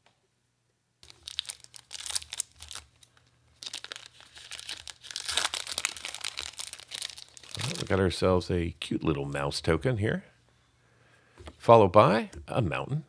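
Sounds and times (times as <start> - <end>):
foil wrapper crinkling: 1.0 - 8.0.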